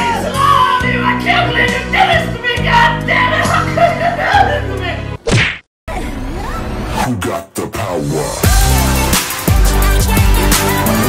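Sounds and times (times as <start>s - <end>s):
whack-and-whoosh sound effect: 5.2s - 5.7s.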